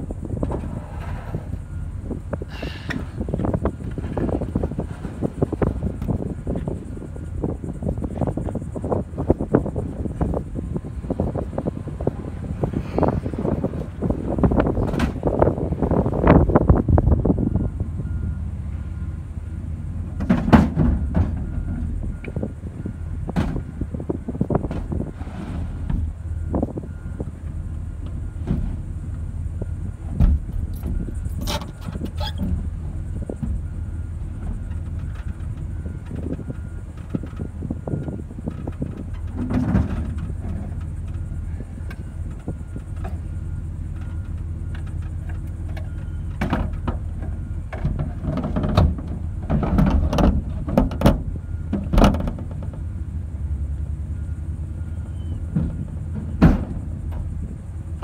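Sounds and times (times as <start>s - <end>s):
heavy engine running: 0.0s - 58.0s.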